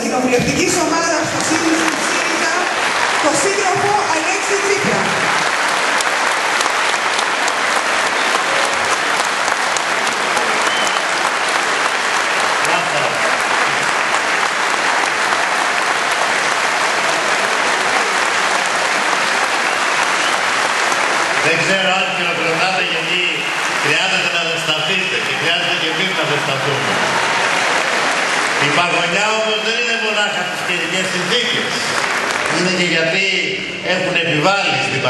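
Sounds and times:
audience applauding: 0:00.0 - 0:35.0.

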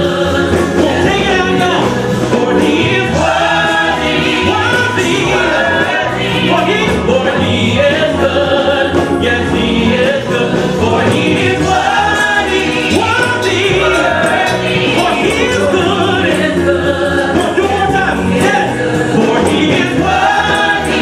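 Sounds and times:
choir of backing singers: 0:00.0 - 0:21.0
man singing into microphone: 0:00.0 - 0:21.0.

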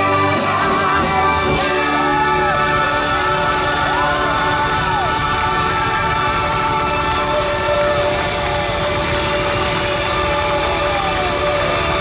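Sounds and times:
audience cheering and applauding: 0:00.0 - 0:12.0
live band sustained chord: 0:00.0 - 0:12.0.

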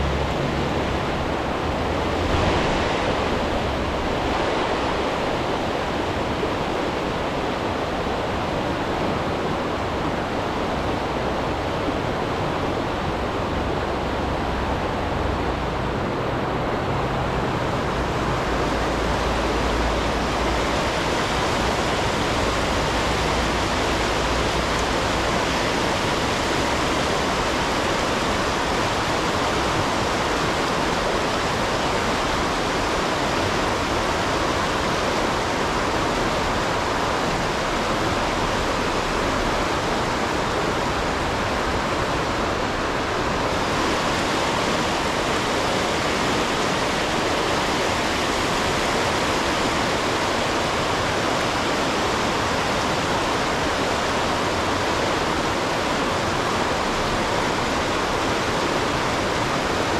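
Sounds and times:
river water rushing over dam: 0:00.0 - 0:59.9.

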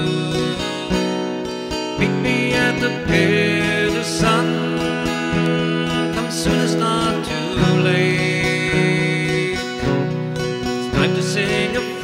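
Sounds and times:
acoustic guitar strumming: 0:00.0 - 0:12.0
person singing folk ballad: 0:00.0 - 0:12.0.

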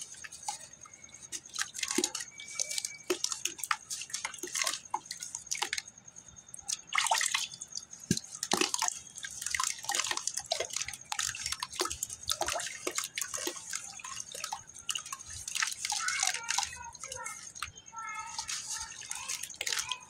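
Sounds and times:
wet sand dripping into water: 0:00.0 - 0:20.0.

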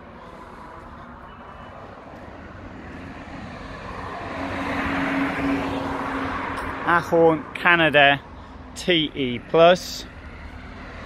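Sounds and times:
vehicle passing by: 0:00.0 - 0:07.6, 0:08.2 - 0:11.0
steady engine hum: 0:00.0 - 0:11.0.

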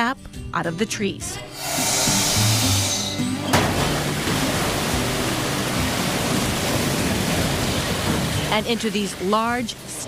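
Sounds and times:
brief hiss: 0:01.6 - 0:03.2.

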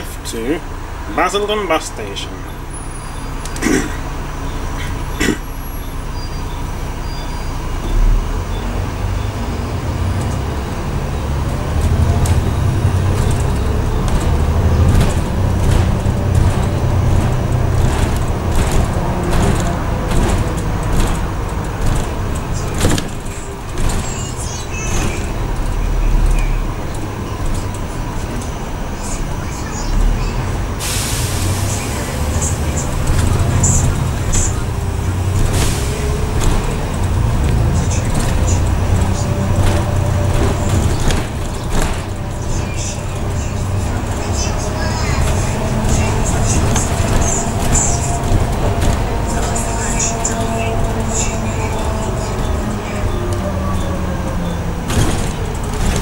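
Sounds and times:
bus engine drone: 0:00.0 - 0:56.0
bodywork rattling and knocking: 0:09.9 - 0:28.6, 0:32.9 - 0:56.0.

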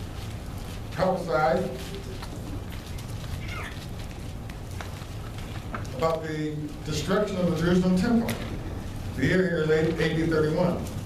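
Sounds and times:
low room hum and hiss: 0:00.0 - 0:11.0.

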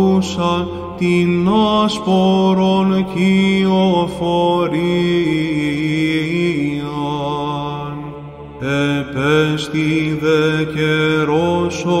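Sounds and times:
steady sung drone: 0:00.0 - 0:12.0.

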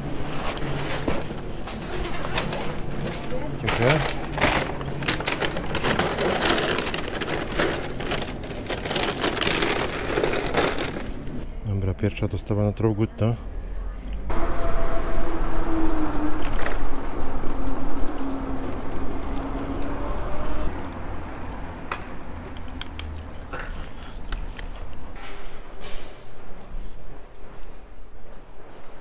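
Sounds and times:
street traffic: 0:00.0 - 0:28.6.

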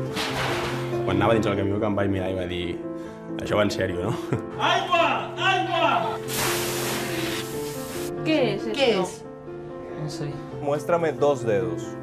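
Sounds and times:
background music with held notes: 0:00.0 - 0:12.0
hose nozzle spraying water: 0:06.2 - 0:08.1.

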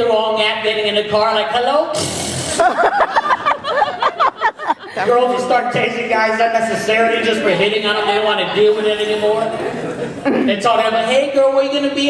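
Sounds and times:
vocal imitation of hissing buzz: 0:01.9 - 0:02.9
audience laughing: 0:02.4 - 0:05.6, 0:08.0 - 0:10.7.

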